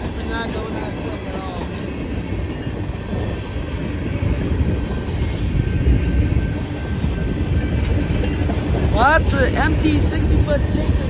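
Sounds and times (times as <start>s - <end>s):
train wheels rumbling and clacking: 0.0s - 11.0s.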